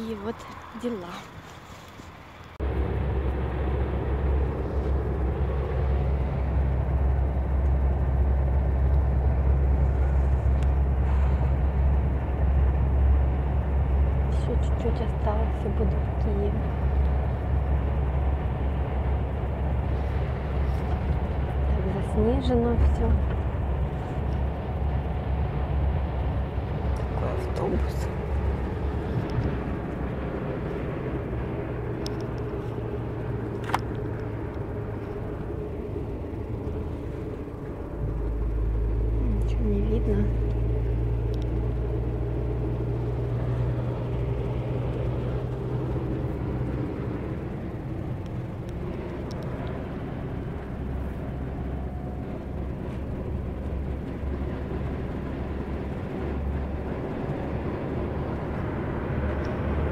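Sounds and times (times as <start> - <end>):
bus engine and road drone: 0.0 - 59.9.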